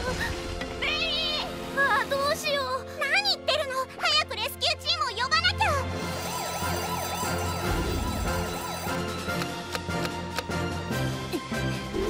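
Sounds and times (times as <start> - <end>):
alarm siren wailing: 5.8 - 9.5.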